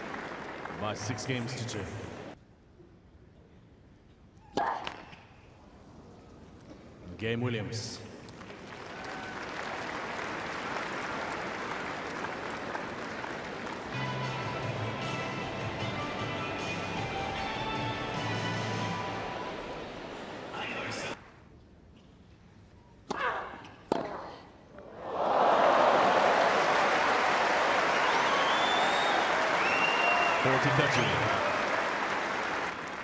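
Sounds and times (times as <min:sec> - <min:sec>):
crowd applauding and cheering: 0:00.0 - 0:02.0, 0:08.3 - 0:20.3, 0:25.0 - 0:33.0
music playing: 0:13.9 - 0:19.9.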